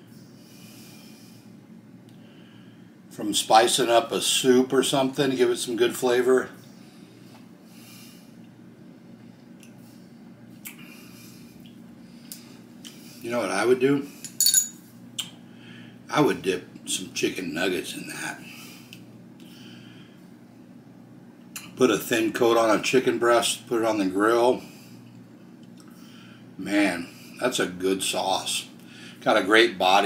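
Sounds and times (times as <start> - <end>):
man breathing through nose: 0.2 - 1.6, 6.8 - 8.4
spoon clinking on wooden table: 14.3 - 14.8
spoon tapping on table: 14.3 - 14.8.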